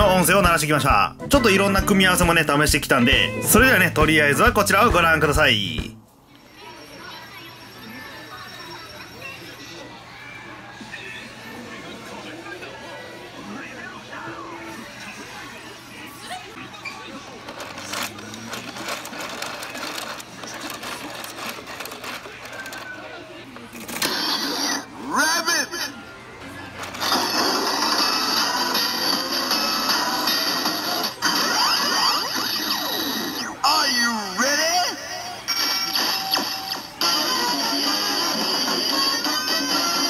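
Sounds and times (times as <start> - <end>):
toy crank gear clicking: 17.5 - 22.9.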